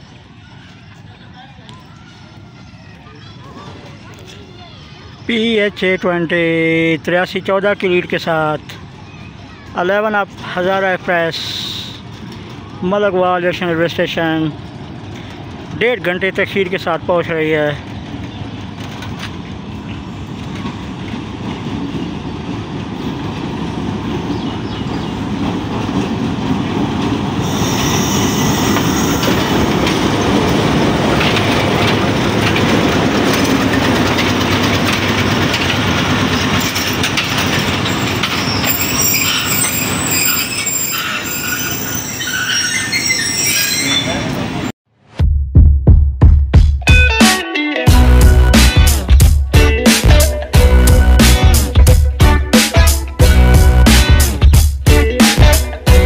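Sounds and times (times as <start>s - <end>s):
train rumbling past: 0.0s - 44.7s, 47.9s - 56.0s
high wheel squeal: 27.4s - 30.6s, 36.0s - 44.7s
music with heavy beat: 45.2s - 56.0s.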